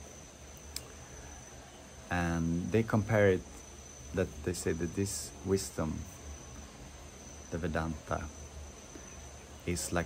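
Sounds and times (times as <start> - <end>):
cricket calling: 0.0 - 10.0
faint click: 0.6 - 0.9.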